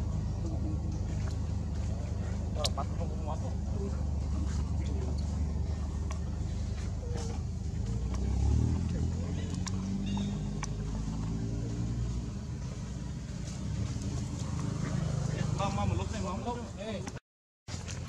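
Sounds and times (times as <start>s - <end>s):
motor rumbling: 0.0s - 16.4s.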